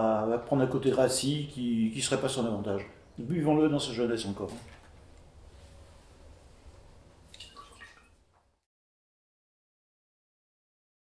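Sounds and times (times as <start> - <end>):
wine splashing into metal bucket: 7.3 - 8.2.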